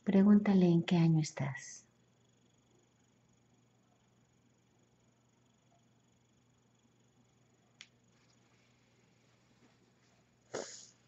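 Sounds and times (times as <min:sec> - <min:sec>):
person sneezing: 0:10.5 - 0:11.0.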